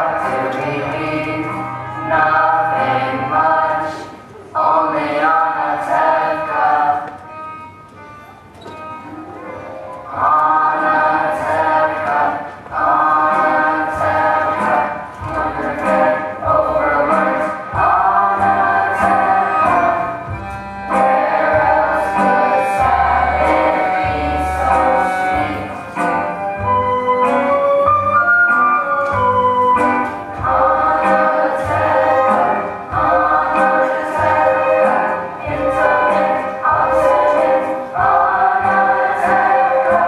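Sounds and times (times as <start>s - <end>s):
young singers singing in chorus: 0.0s - 7.4s, 10.0s - 26.4s, 29.9s - 40.0s.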